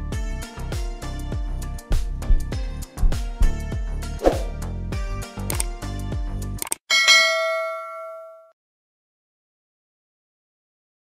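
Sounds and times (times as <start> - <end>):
background music with beat: 0.0 - 6.6
quick clicks: 5.4 - 5.7, 6.6 - 6.8
notification bell chime: 6.9 - 8.5.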